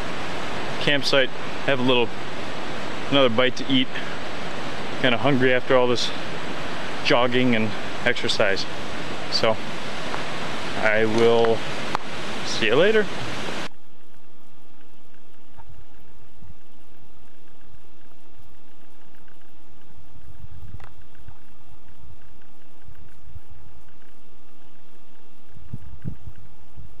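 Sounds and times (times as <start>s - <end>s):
faint hum tones: 0.0s - 27.0s
steady hiss: 0.0s - 27.0s.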